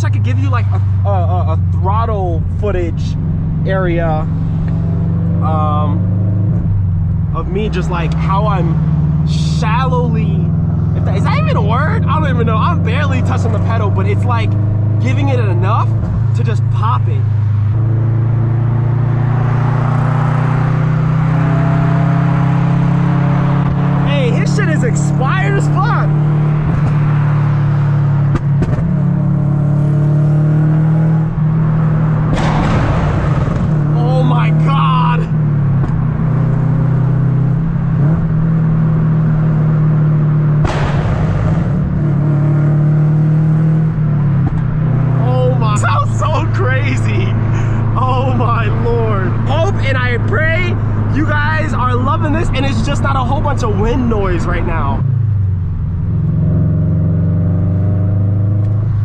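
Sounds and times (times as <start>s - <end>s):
car engine droning at cruise: 0.0s - 59.0s.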